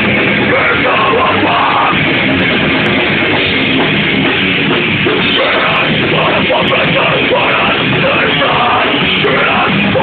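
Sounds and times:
distorted electric guitars: 0.0 - 10.0
drum kit pounding: 0.0 - 10.0.

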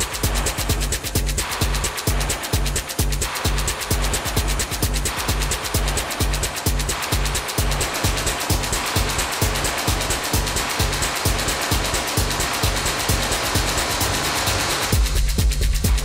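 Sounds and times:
heavy bass line: 0.0 - 16.0
kick drum beat: 0.0 - 16.0
synth noise and hi-hats: 0.0 - 16.0.

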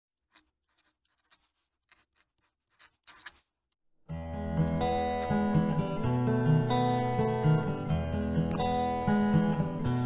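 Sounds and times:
pen nib scratching paper: 0.2 - 3.5.

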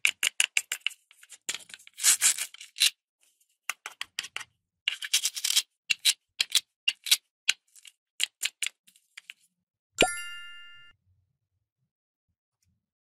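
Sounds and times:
bright ding with dropping pop: 10.0 - 10.9.

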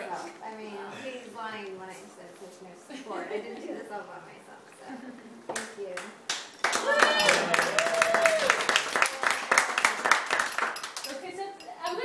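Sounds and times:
hand claps: 5.5 - 11.2
group applause: 6.3 - 11.1.

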